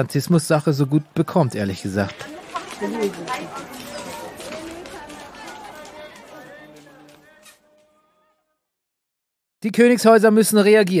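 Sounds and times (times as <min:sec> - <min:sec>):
crowd chattering: 0:00.0 - 0:08.5.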